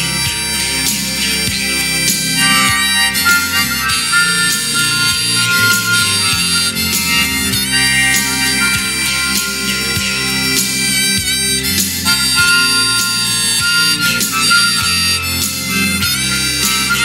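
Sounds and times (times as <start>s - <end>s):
bass and drums: 0.0s - 17.0s
harmonica solo: 0.0s - 17.0s.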